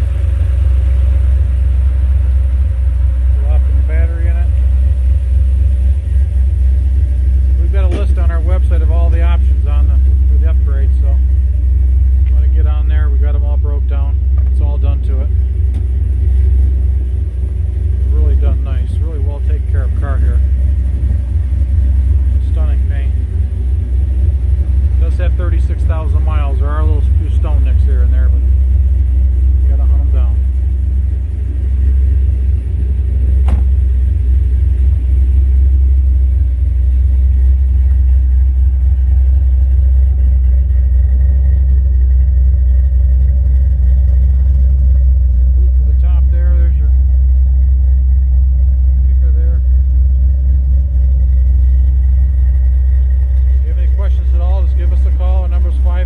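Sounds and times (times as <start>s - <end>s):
car engine idling: 0.0s - 56.0s.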